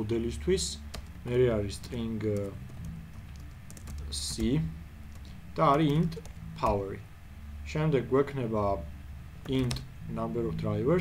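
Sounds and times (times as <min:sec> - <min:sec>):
man speaking: 0:00.0 - 0:02.6, 0:04.0 - 0:04.8, 0:05.5 - 0:08.9, 0:09.5 - 0:11.0
keyboard typing: 0:00.9 - 0:06.8, 0:09.4 - 0:09.9.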